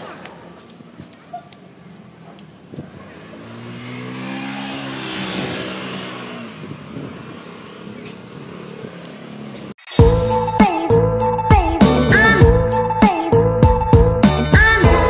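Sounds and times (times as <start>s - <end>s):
tyre and wind noise: 0.0s - 9.7s
vehicle engine passing by: 2.2s - 9.8s.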